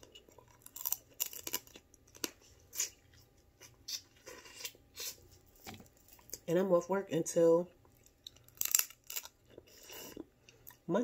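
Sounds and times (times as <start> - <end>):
crab shell clicks and crackles: 0.0 - 2.4, 8.0 - 9.4
chewing and wet mouth sounds: 7.7 - 10.8.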